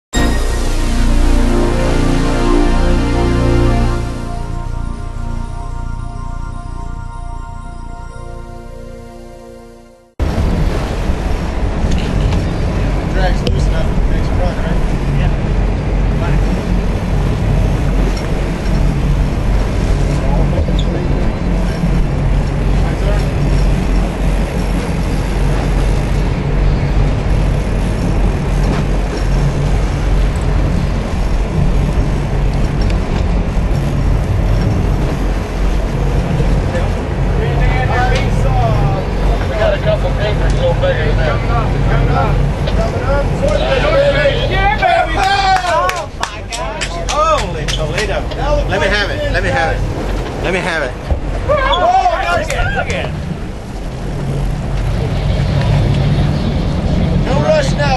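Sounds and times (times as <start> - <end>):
sea noise: 0.1 - 57.9
wind: 0.1 - 57.9
boat engines running: 0.2 - 57.9.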